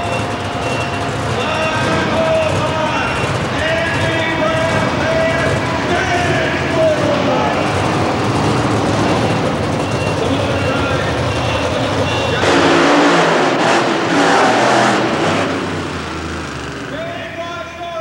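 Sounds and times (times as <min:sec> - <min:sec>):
monster truck engine rumbling: 0:00.0 - 0:18.0.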